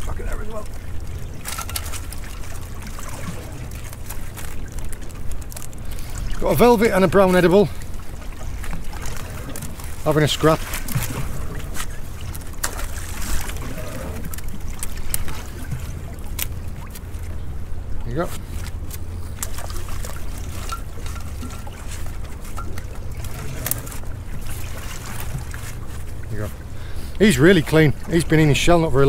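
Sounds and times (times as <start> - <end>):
small boat engine idling: 0.0 - 29.0.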